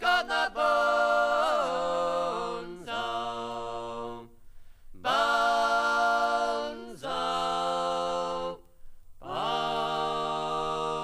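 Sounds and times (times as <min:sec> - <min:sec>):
unaccompanied folk singing in harmony: 0:00.0 - 0:11.0.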